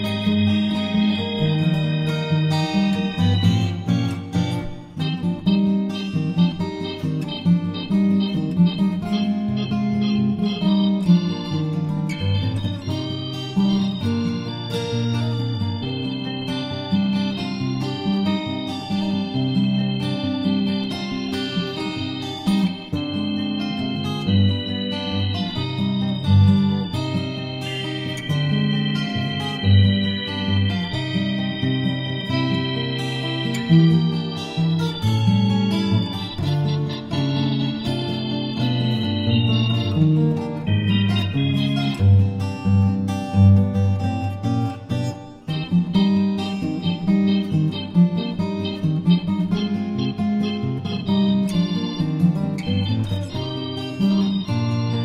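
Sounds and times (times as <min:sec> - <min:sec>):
acoustic guitars plucking: 0:00.0 - 0:55.0
organ chords: 0:00.0 - 0:55.0.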